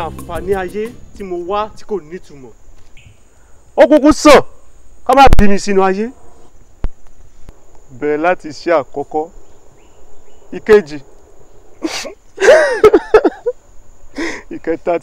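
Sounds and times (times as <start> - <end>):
high-pitched insect buzz: 0.0 - 3.8, 4.5 - 14.2
man wailing and sobbing: 11.8 - 13.5.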